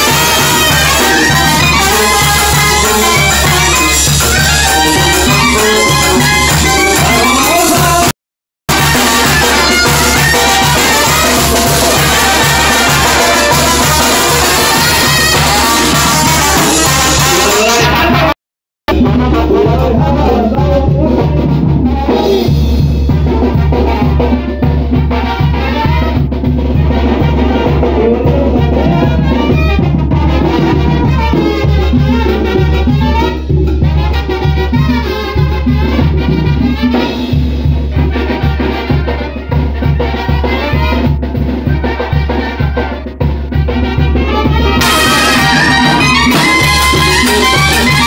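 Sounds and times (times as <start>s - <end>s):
drums keeping steady beat: 0.0s - 8.1s, 8.7s - 48.0s
brass band playing latin music: 0.0s - 48.0s.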